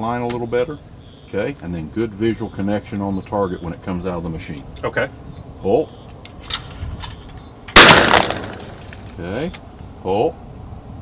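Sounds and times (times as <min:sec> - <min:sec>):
shotgun blast: 0:07.8 - 0:09.0.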